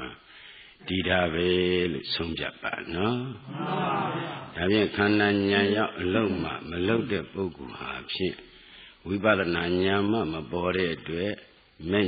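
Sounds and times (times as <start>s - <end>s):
man preaching in intoning style: 0.0s - 12.0s.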